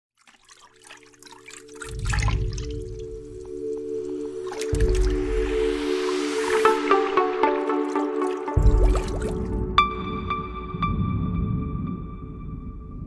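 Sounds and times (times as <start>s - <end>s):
dripping bubbling water effects: 0.2s - 12.7s
music with sustained drone: 1.7s - 13.0s
deep bass swells: 4.8s - 6.9s.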